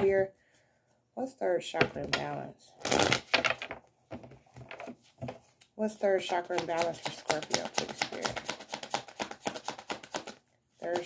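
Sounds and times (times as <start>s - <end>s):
cards being shuffled: 4.7s - 11.0s.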